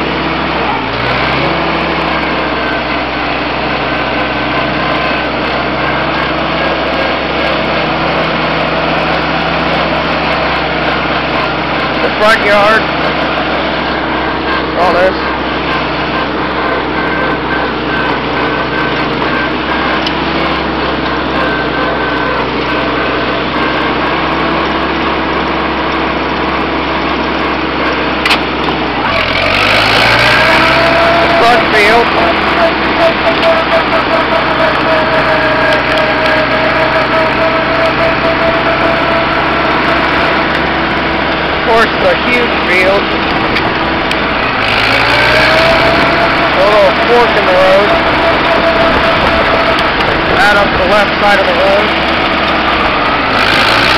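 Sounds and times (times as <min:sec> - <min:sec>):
tractor engine running: 0:00.0 - 0:53.9.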